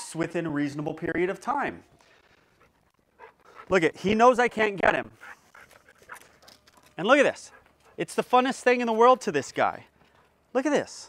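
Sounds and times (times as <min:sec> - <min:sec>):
dog panting: 0:02.5 - 0:03.9, 0:04.8 - 0:08.2.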